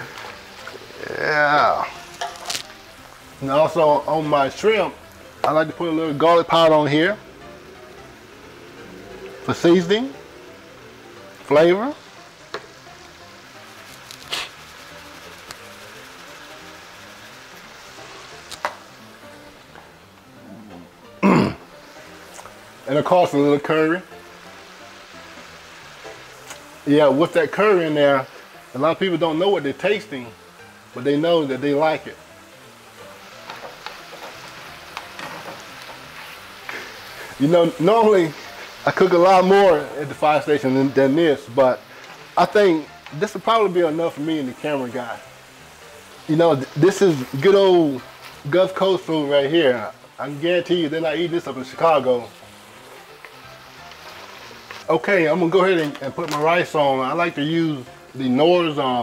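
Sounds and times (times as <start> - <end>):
food sizzling in pans: 0.0 - 59.0.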